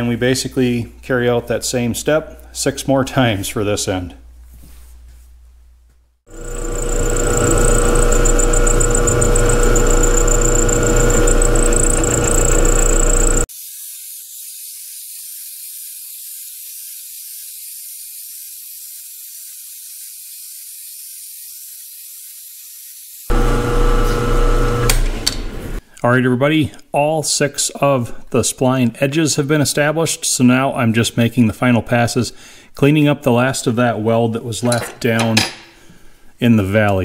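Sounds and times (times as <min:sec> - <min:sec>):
milling machine whining: 0:06.3 - 0:13.5, 0:23.3 - 0:25.8
thin hiss: 0:13.5 - 0:23.3.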